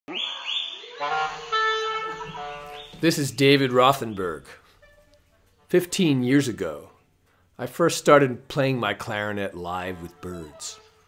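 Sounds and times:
bird swooping whistled calls: 0.1 - 1.0, 2.7 - 3.0
clarinet playing held notes: 0.9 - 5.9.

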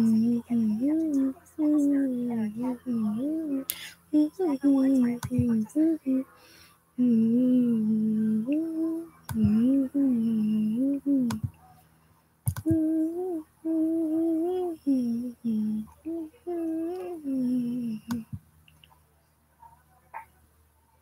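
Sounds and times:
woman humming: 0.0 - 6.3, 7.0 - 11.5, 12.6 - 18.4.

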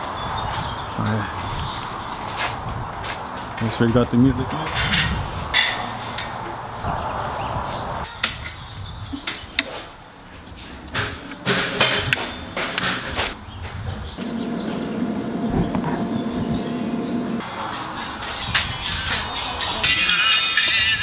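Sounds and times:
steady music or tone: 14.2 - 18.3.

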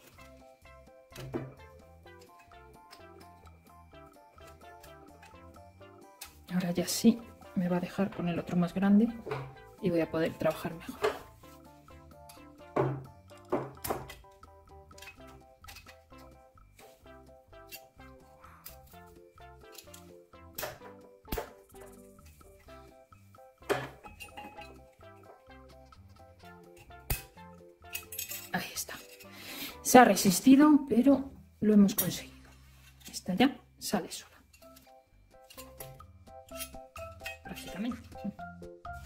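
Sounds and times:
quiet background music: 0.0 - 39.0
screwdriver clicking and scraping metal: 27.9 - 29.4, 34.5 - 38.1.

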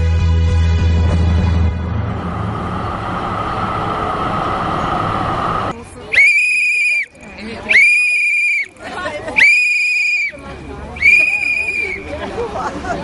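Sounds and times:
noisy steady background: 1.5 - 13.0
high whistling tone: 6.2 - 8.8, 11.0 - 12.1.

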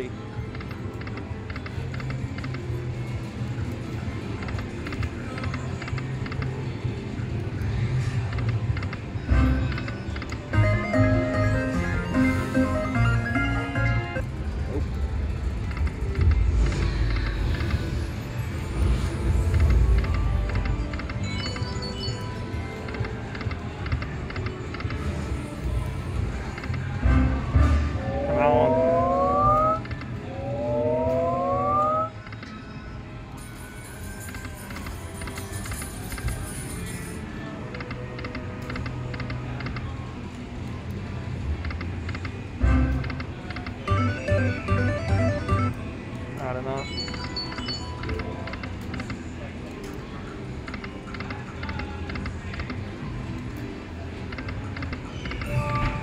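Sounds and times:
electronic game music: 8.3 - 25.4, 26.1 - 32.3, 42.6 - 48.7
rising electronic tones: 27.6 - 32.2
slot machine reels spinning: 33.4 - 38.0, 42.9 - 45.8.

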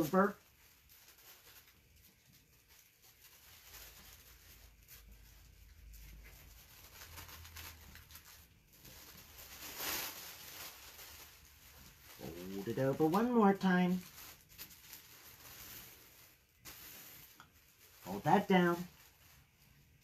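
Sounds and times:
tissue paper crinkle: 0.0 - 20.0
tissue paper rustling: 0.0 - 20.0.

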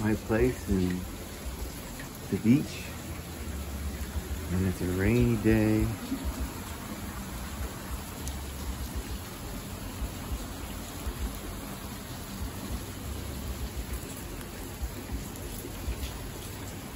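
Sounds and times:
rain splashing on wet deck: 0.0 - 16.9.

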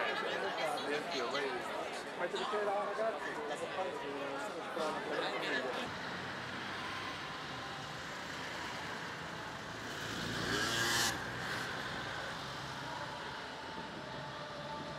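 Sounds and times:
town background noise: 0.0 - 14.9
motor vehicle passing: 5.8 - 14.9.

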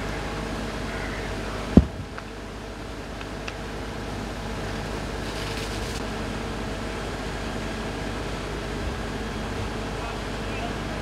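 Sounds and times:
engines and pumps droning: 0.0 - 11.0.

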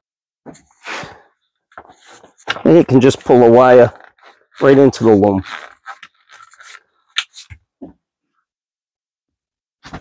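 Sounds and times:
plastic tubing scraping and rustling: 1.7 - 7.7.

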